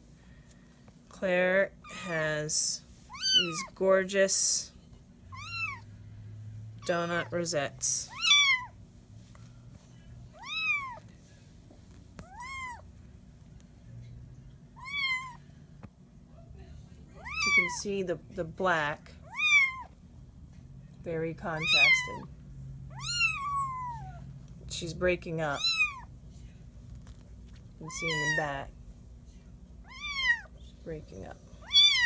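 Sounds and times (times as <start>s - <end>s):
faint low hum: 0.0s - 32.0s
kitten meowing: 3.1s - 3.7s, 5.3s - 5.8s, 8.1s - 8.7s, 10.4s - 11.0s, 12.2s - 12.8s, 14.8s - 15.4s, 17.2s - 17.8s, 19.3s - 19.9s, 21.6s - 22.3s, 22.9s - 24.2s, 25.6s - 26.1s, 27.9s - 28.6s, 29.8s - 30.5s, 31.6s - 32.0s.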